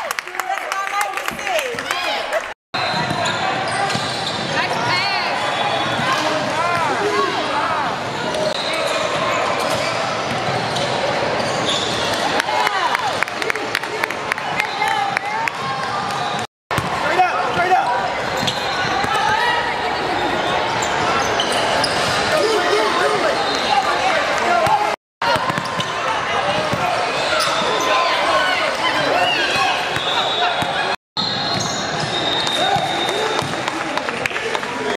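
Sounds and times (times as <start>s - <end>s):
voices of players and spectators: 0.0s - 34.9s
sneakers squeaking on floor: 2.8s - 6.4s, 8.4s - 12.2s, 17.5s - 33.7s
basketball bouncing: 16.7s - 17.0s, 24.6s - 25.9s
basketball bouncing on court: 16.7s - 19.4s, 24.6s - 26.9s.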